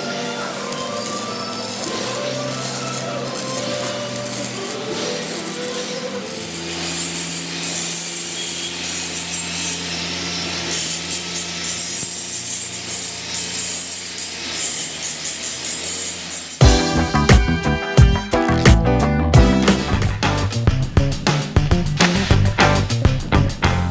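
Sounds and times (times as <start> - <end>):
arc welding: 0.0 - 18.8
angle grinder grinding metal: 0.0 - 18.9.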